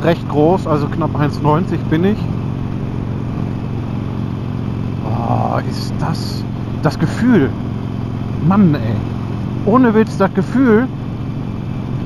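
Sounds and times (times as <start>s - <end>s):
motorcycle engine running steadily: 0.0s - 12.0s.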